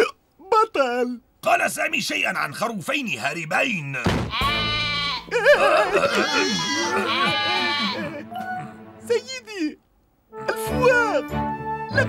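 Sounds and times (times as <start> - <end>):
sudden bang: 4.0 - 4.4
sheep bleating: 4.3 - 5.4, 6.0 - 8.2.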